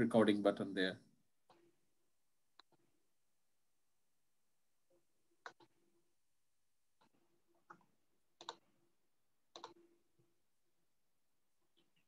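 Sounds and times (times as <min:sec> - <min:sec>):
computer clicks: 0:07.7 - 0:08.7, 0:09.5 - 0:09.8.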